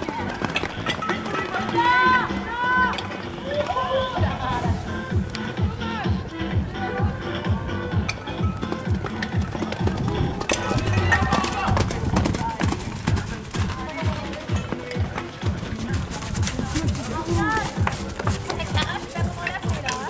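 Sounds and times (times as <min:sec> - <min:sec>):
hoofbeats on sand: 0:00.0 - 0:05.0, 0:08.0 - 0:20.0
background music: 0:00.0 - 0:20.0
people's voices: 0:00.0 - 0:20.0.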